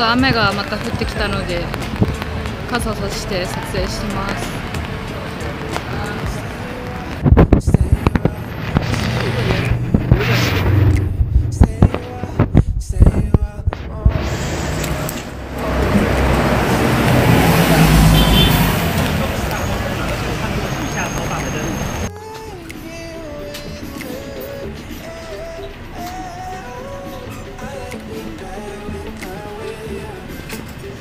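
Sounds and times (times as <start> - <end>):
city street traffic: 0.0 - 31.0
loud knocks and thumps: 7.3 - 14.2
vehicle passing close by: 8.3 - 11.9, 14.1 - 22.1.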